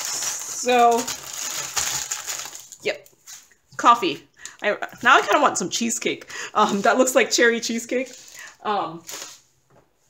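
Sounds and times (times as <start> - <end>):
plastic packaging crinkling: 0.0 - 3.5, 7.6 - 9.4.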